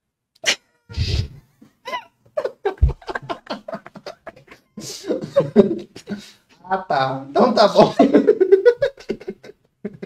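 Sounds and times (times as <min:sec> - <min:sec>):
person laughing: 0:01.8 - 0:06.3, 0:07.8 - 0:10.0.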